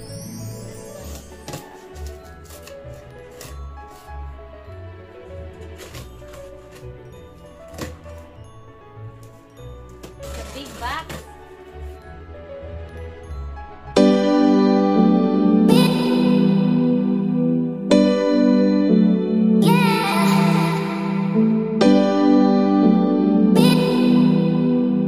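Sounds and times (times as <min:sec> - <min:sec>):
background music: 0:00.0 - 0:25.0
tape peeling: 0:01.5 - 0:04.1
packing tape ripping: 0:01.5 - 0:04.2, 0:05.6 - 0:06.9.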